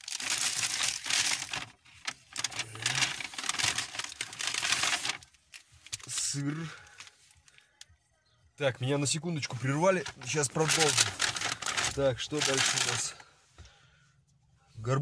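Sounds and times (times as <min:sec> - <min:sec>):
paper bag rustling: 0:00.0 - 0:07.3, 0:09.6 - 0:13.2
plastic wrappers crinkling: 0:00.0 - 0:07.9, 0:09.9 - 0:13.2.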